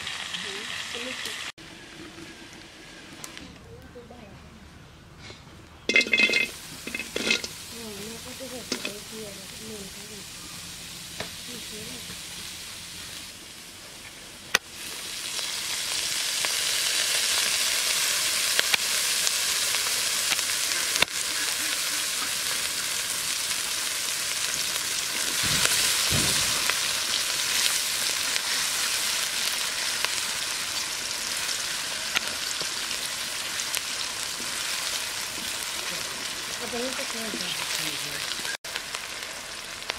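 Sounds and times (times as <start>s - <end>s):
onions sizzling in oil: 0.0s - 3.4s, 5.9s - 39.9s.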